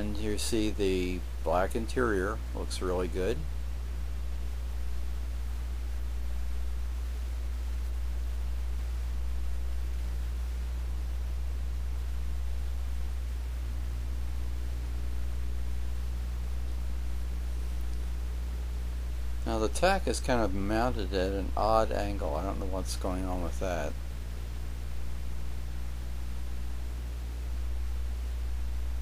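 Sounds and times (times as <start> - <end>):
faint hiss: 0.0 - 29.0
steady low hum: 0.0 - 29.0.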